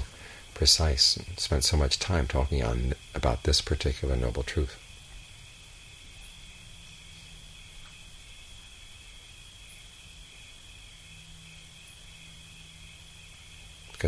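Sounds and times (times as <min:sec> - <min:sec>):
crickets chirring: 0:00.0 - 0:14.0
low steady hum: 0:00.0 - 0:14.0.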